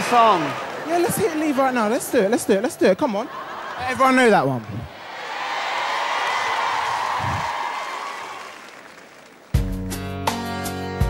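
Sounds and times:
audience cheering and applauding: 3.4 - 9.7.

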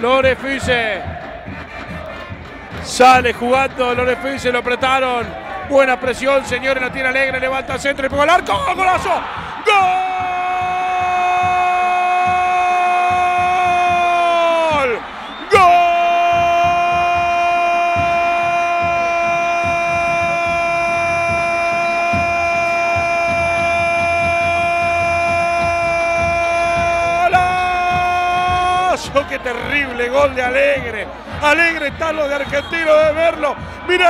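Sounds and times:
commentator shouting goal: 2.8 - 34.0.

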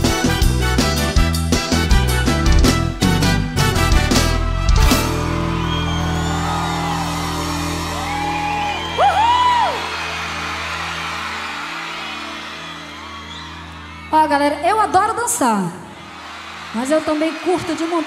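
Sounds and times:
crowd cheering: 4.8 - 18.0
person whooping: 5.5 - 10.0.

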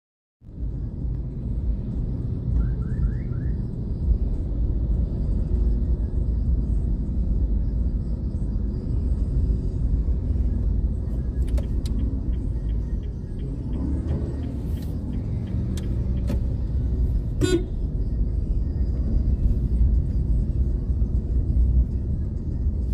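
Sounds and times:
car engine rumble: 0.4 - 22.9
road noise: 0.4 - 22.9.

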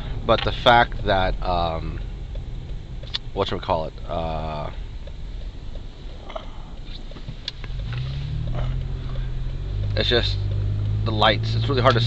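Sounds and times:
engine hum: 0.0 - 12.0
road and engine rumble: 0.0 - 12.0.

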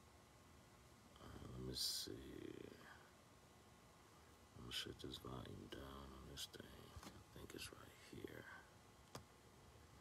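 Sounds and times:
faint whispered speech: 4.6 - 8.7.

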